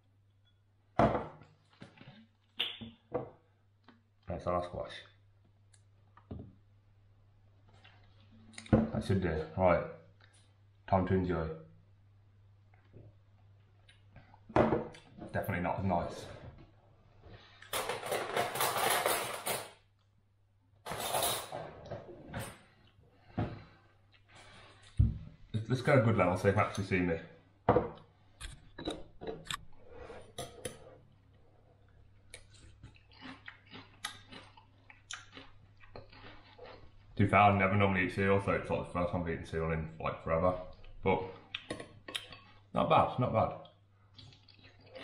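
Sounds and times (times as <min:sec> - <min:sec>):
cutlery rattling in a drawer: 0:17.7 - 0:19.8, 0:20.9 - 0:21.8.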